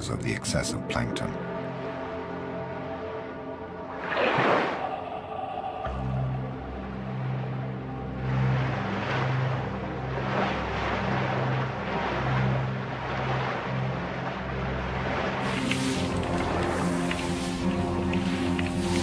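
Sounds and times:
washes of noise: 3.9 - 19.0.

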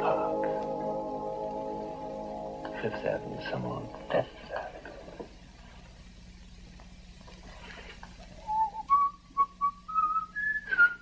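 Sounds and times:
faint steady hum: 0.0 - 11.0
person whistling a tune: 8.4 - 11.0.

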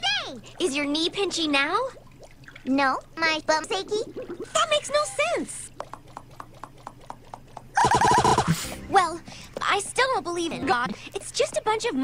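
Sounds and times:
horse whinny: 7.8 - 8.7.

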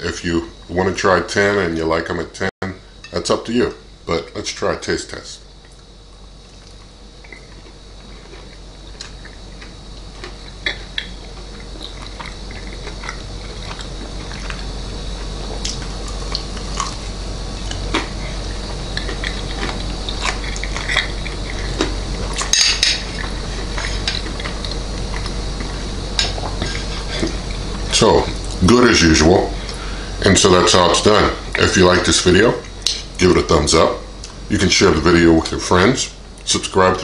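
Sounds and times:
low steady hum and hiss: 0.0 - 37.0
chewing chicken: 6.5 - 28.6.

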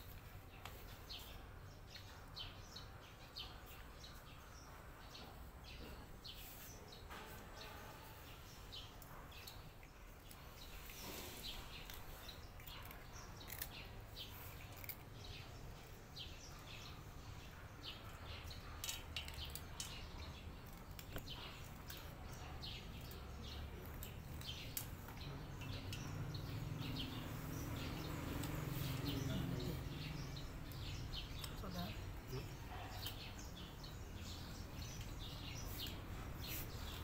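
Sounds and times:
cats chewing: 6.6 - 37.0.

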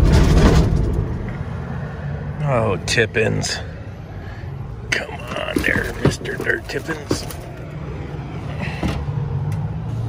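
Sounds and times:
vehicle engine and road noise: 0.0 - 10.0.

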